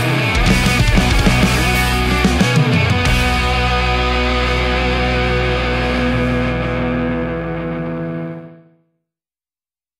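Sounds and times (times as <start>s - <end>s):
distorted guitars and bass ringing: 0.0s - 8.8s.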